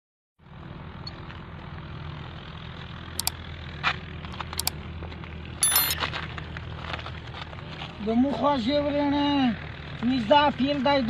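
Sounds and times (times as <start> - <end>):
ringing burst: 5.6 - 6.0
sharp clicks: 5.6 - 6.0
small engine running: 5.6 - 6.0.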